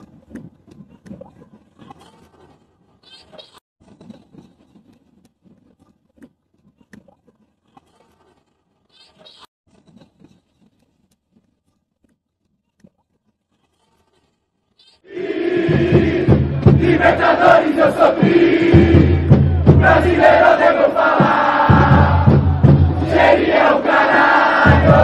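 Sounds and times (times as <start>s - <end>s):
stadium crowd noise: 15.1s - 25.0s.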